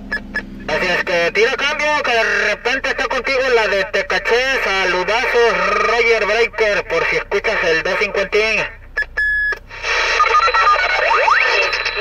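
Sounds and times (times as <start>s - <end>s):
electronic beep tones: 0.0s - 1.1s, 9.0s - 9.6s, 10.2s - 12.0s
radio static hiss: 4.9s - 8.3s, 9.7s - 10.6s, 11.4s - 12.0s.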